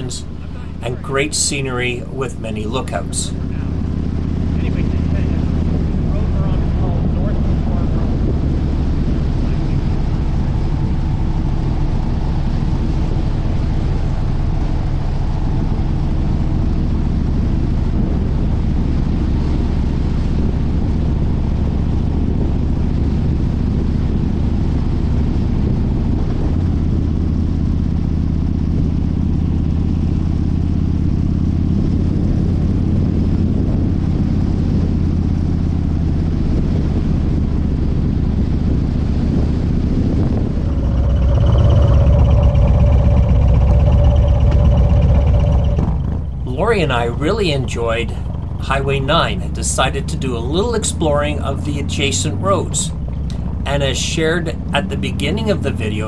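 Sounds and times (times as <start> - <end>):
louder closer engine: 0.0 - 56.0
motorcycle engine running: 0.0 - 56.0.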